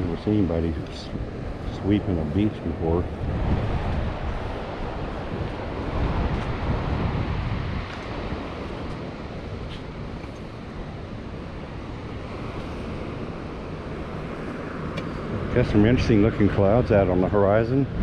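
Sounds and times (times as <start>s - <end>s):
surf washing: 0.0s - 18.0s
wind buffeting microphone: 0.0s - 18.0s.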